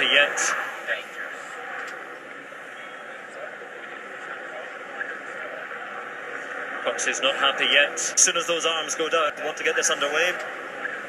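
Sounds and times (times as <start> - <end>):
faint distant voices: 0.0 - 11.0
outdoor background noise: 0.0 - 11.0.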